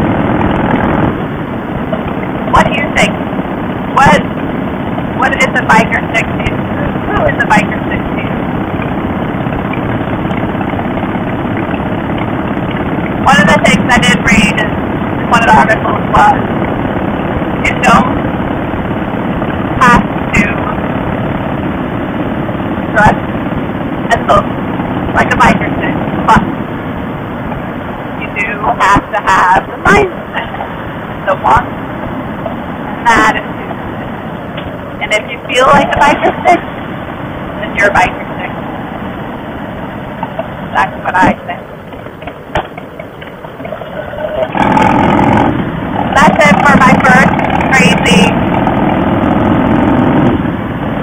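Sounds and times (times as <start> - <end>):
motorcycle engine running: 0.0 - 43.8, 44.4 - 51.0
wind rushing on microphone: 43.6 - 51.0.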